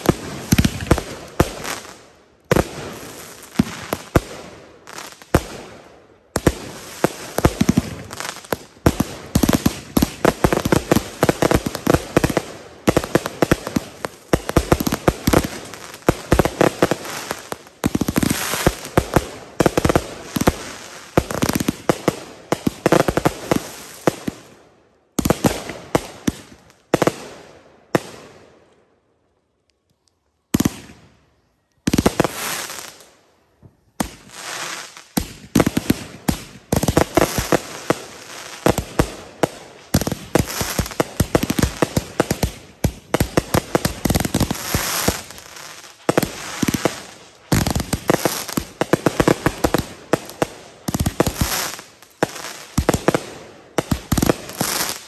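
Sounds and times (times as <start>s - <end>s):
fireworks bangs and crackle: 0.0s - 28.5s, 30.5s - 31.2s, 31.8s - 55.0s.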